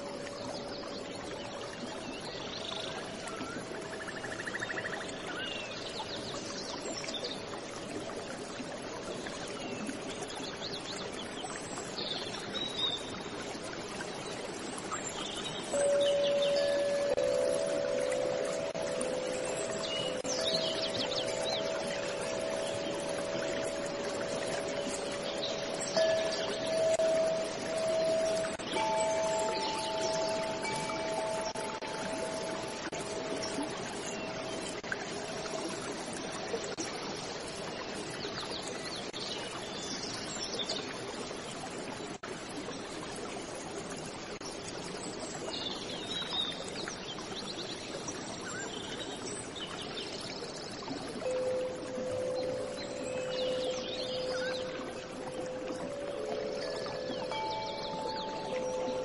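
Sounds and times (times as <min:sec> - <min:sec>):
soft chime-like tones: 0:00.0 - 0:08.7, 0:14.4 - 0:37.8, 0:50.8 - 0:59.0
running water: 0:00.0 - 0:59.0.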